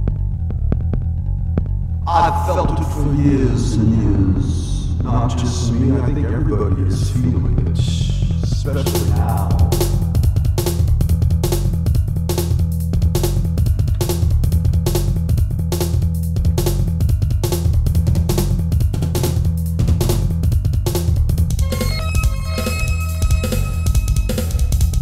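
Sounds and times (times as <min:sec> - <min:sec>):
heavy sustained bass: 0:00.4 - 0:12.2
fast drum beat: 0:07.7 - 0:21.6
synthesizer music: 0:08.7 - 0:11.0.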